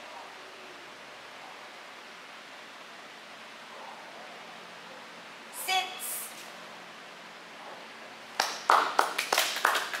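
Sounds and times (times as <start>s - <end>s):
hands clapping: 8.4s - 10.0s.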